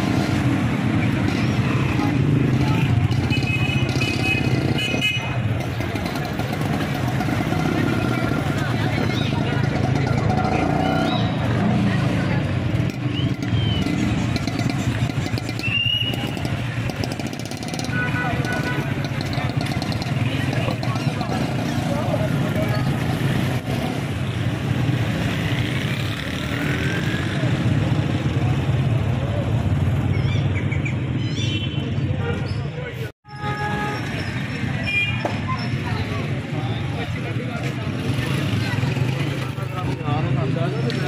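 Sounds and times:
motorcycle and car engines running: 0.0s - 31.2s, 34.1s - 41.0s
chatter of many people: 0.0s - 41.0s.

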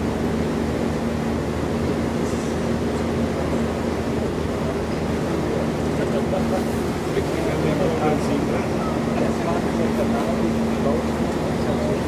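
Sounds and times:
boat engine humming: 0.0s - 12.0s.

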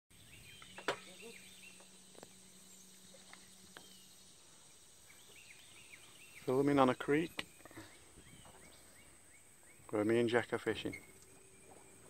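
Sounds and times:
low steady hum: 0.1s - 12.0s
small birds chirping: 0.1s - 12.0s
steady high-pitched whine: 0.1s - 12.0s.

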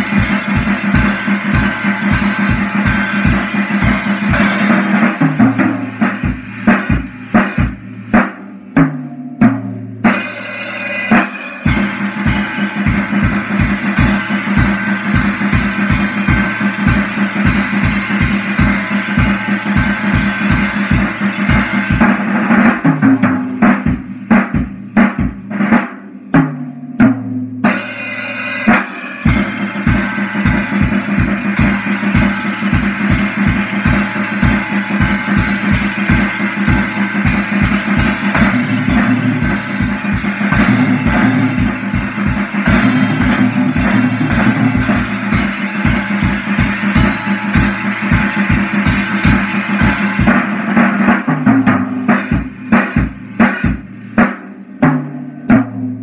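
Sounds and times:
drum kit playing: 0.0s - 56.0s.

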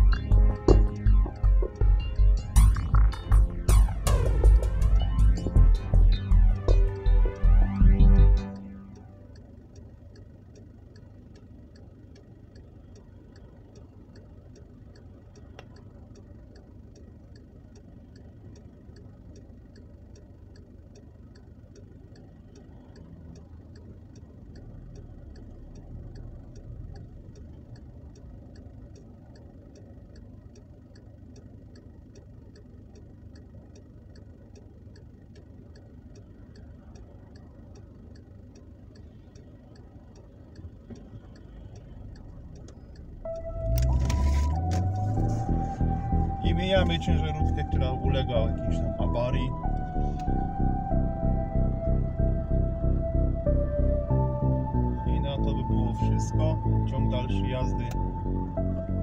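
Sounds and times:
car engine idling: 0.0s - 59.0s
turn signal ticking: 0.0s - 59.0s.

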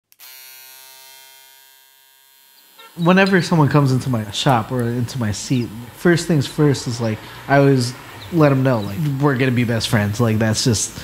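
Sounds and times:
electric hair clippers buzzing: 0.0s - 5.0s.

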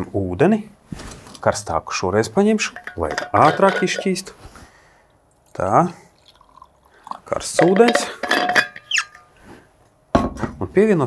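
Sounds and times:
metal clinks and knocks: 2.6s - 4.2s, 7.6s - 9.3s
metal ringing: 2.6s - 4.3s, 7.6s - 9.3s.

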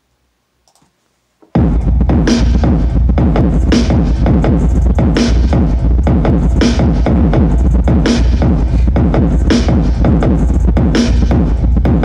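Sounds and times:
trap electronic music: 1.6s - 12.0s.

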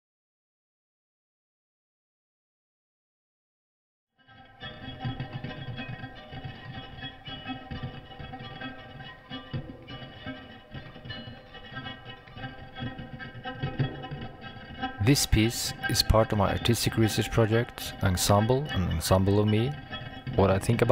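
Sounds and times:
electric guitar ringing tones: 4.2s - 20.9s.

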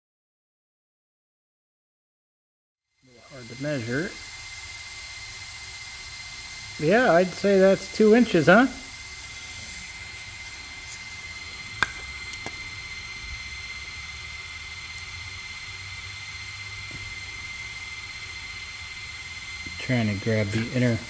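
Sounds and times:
cooling fan hiss: 2.9s - 21.0s.

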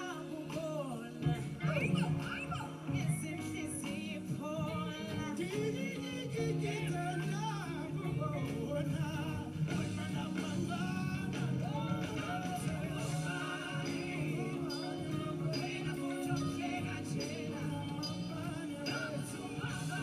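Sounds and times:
live band music on television: 0.0s - 20.0s
person singing: 0.0s - 20.0s.

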